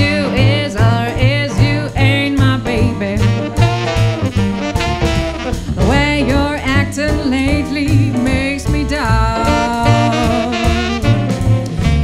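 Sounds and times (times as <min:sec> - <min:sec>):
swing band playing: 0:00.0 - 0:12.0.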